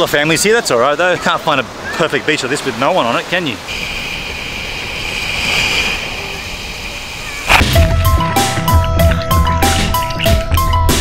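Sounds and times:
small waves on a sandy beach: 0:00.0 - 0:07.5
marimba melody over drums and bass: 0:07.6 - 0:11.0.

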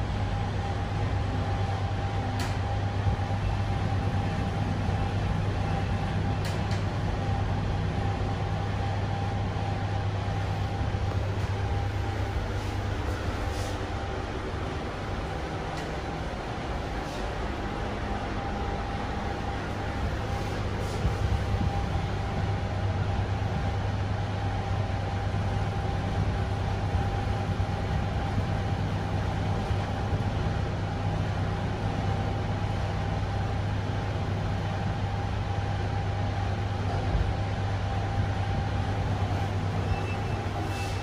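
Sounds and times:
lift travelling rumble: 0:00.0 - 0:41.0
thin steady whine: 0:00.0 - 0:41.0.

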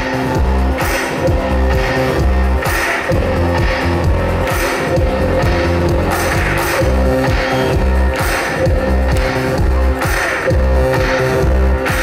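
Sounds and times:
drums keeping a steady beat: 0:00.0 - 0:12.0
pulsing bass line: 0:00.0 - 0:12.0.

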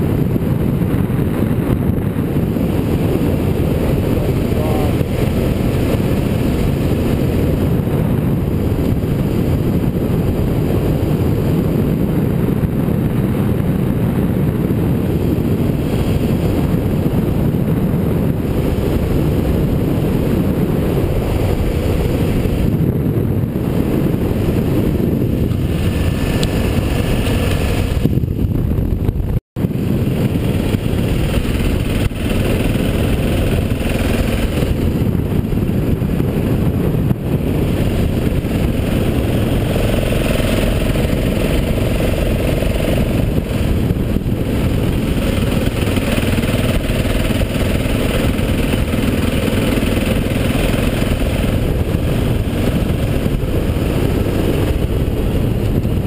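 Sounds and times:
motorcycle engine running: 0:00.0 - 0:56.0
wind noise: 0:00.0 - 0:56.0.

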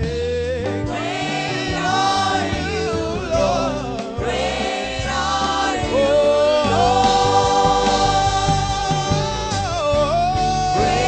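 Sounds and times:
choir singing with instruments: 0:00.1 - 0:11.0.

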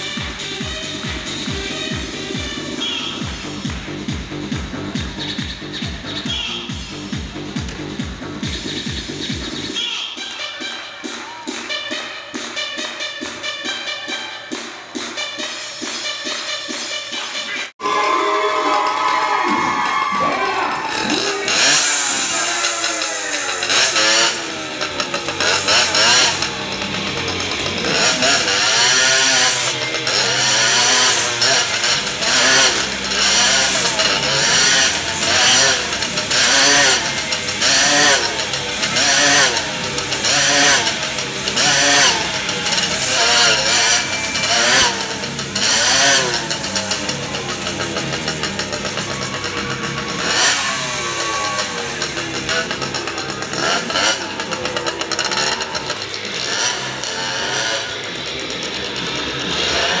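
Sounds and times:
motorcycle engine circling: 0:00.0 - 0:09.8, 0:10.9 - 1:00.0.

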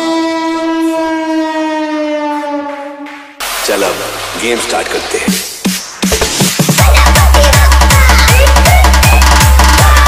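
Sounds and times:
long held siren tone: 0:00.0 - 0:03.4.

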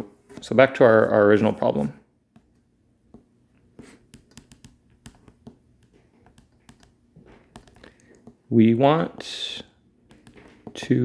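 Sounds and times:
stylus tapping on glass screen: 0:10.1 - 0:10.8.

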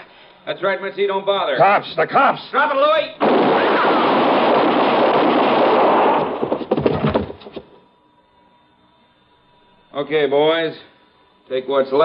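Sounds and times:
gunshots volley: 0:03.2 - 0:07.3
sharp cracks and knocks: 0:03.2 - 0:07.8.

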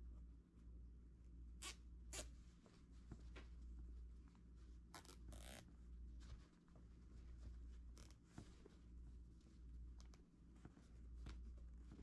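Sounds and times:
faint low hum: 0:00.0 - 0:12.0
zip tie ratcheting: 0:04.9 - 0:05.6.

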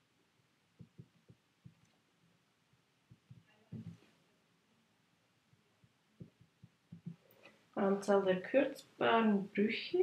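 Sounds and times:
pencil tapping on paper: 0:00.8 - 0:01.9, 0:02.7 - 0:04.1, 0:05.5 - 0:07.2.

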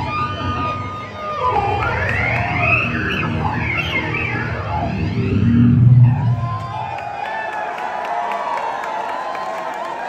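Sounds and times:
bending wavering guitar tones: 0:00.0 - 0:06.6.

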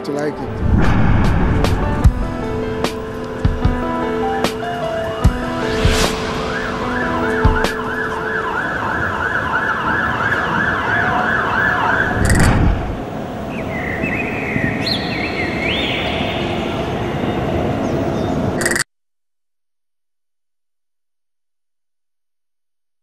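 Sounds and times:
city traffic noise: 0:00.0 - 0:18.8
siren wailing: 0:00.4 - 0:14.8
emergency siren yelping: 0:02.8 - 0:13.5.

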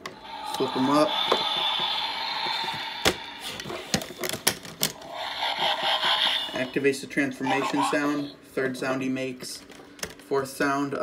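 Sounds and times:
hissing electronic sound effect: 0:00.0 - 0:08.4.

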